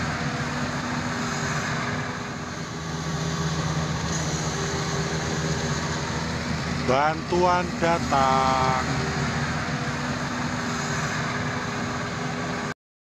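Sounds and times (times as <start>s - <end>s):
harvester engines droning: 0.0s - 12.8s.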